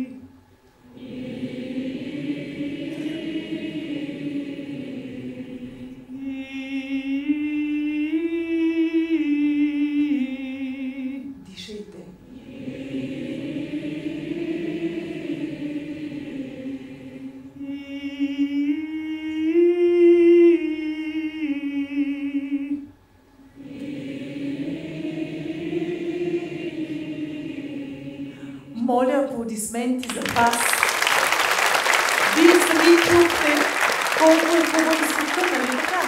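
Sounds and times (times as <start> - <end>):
woman singing with vibrato: 0.0 - 0.2, 6.1 - 11.4, 17.6 - 22.9, 28.7 - 31.0, 32.2 - 36.0
audience singing back: 0.9 - 6.4, 12.3 - 17.4, 23.6 - 28.7, 30.3 - 36.0.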